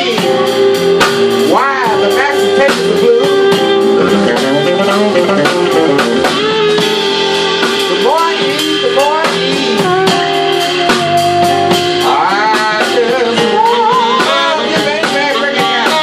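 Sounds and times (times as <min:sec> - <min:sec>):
blues band playing: 0:00.0 - 0:16.0
drum kit with cymbals: 0:00.0 - 0:16.0
fretless electric bass: 0:00.0 - 0:16.0
keyboards: 0:00.0 - 0:16.0.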